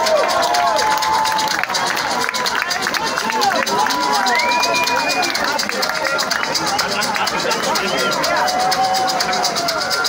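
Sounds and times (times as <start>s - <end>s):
crowd voices and whoops: 0.0s - 10.0s
fast hi-hat pattern: 0.0s - 10.0s.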